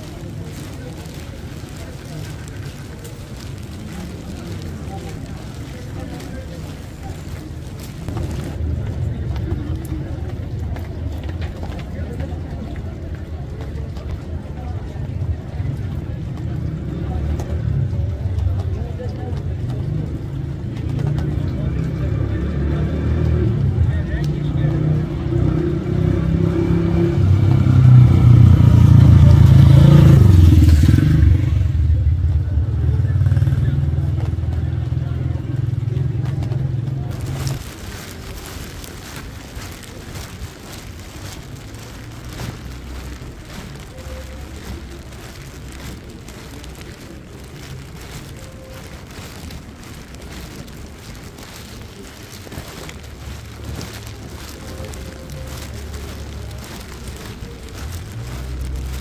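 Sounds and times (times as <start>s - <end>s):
rain on wet street: 0.0s - 59.0s
street traffic rumble: 0.0s - 59.0s.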